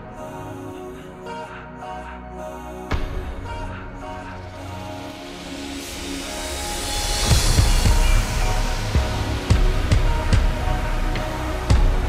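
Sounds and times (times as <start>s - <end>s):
slowed reverb-heavy pop song: 0.0s - 12.0s
heavy low drum kicks: 7.2s - 12.0s.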